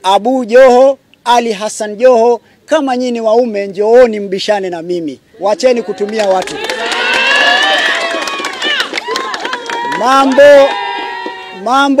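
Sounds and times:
man talking: 0:00.0 - 0:06.6, 0:10.0 - 0:10.8, 0:11.6 - 0:12.0
crowd of men talking: 0:05.4 - 0:08.1.

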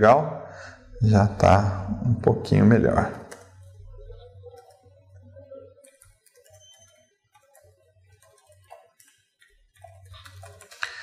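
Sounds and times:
computer keyboard typing: 0:03.1 - 0:03.7, 0:04.4 - 0:05.1, 0:05.8 - 0:11.0.

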